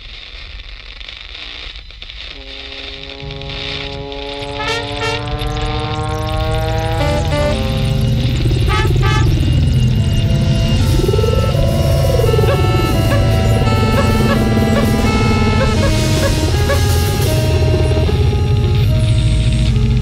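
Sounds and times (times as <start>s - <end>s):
live band held chords: 2.4s - 20.0s
low steady rumble: 2.4s - 20.0s.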